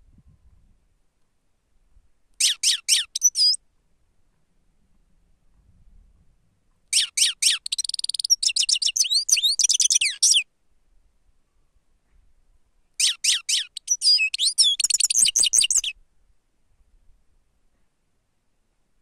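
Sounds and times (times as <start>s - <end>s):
finch singing twittering trills: 2.4s - 3.6s, 7.0s - 10.4s, 13.0s - 15.9s.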